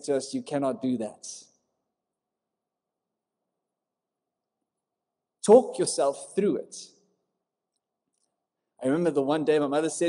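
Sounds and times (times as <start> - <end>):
man speaking: 0.0 - 1.6, 5.4 - 7.0, 8.8 - 10.0.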